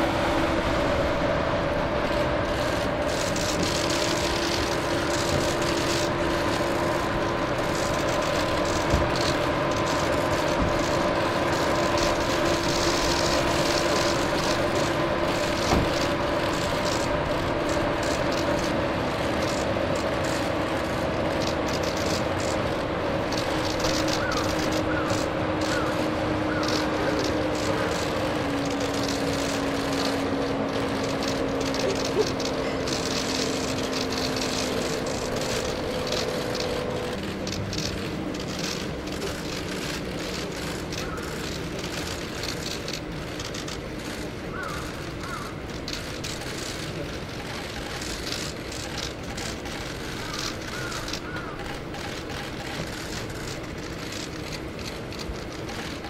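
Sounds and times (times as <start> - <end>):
idling cars humming: 0.0 - 56.0.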